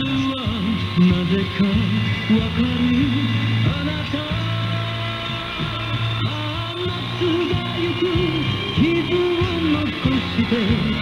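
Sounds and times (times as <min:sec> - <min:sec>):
song with singing voice on radio: 0:00.0 - 0:11.0.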